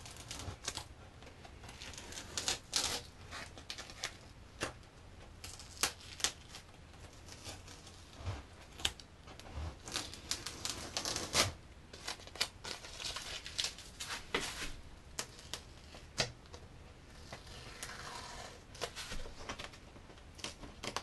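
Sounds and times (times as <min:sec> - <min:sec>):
masking tape peeling and crinkling: 0:00.0 - 0:21.0.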